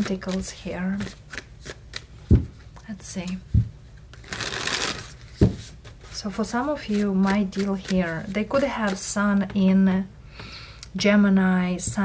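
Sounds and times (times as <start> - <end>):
cards being shuffled: 0.0 - 3.4, 4.0 - 9.1.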